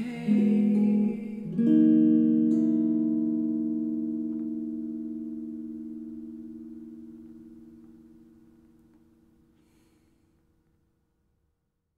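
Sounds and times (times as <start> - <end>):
electric guitar chord ringing: 0.0 - 9.6.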